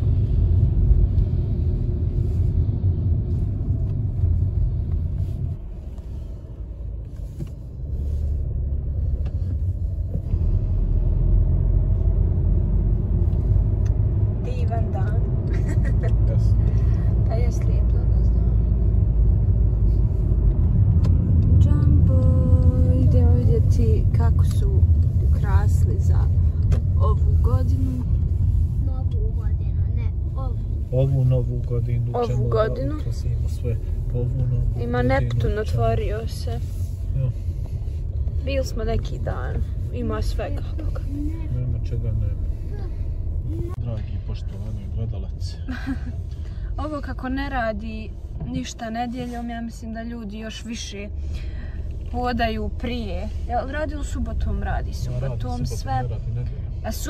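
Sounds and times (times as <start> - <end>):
road and engine rumble in car: 0.0 - 57.0.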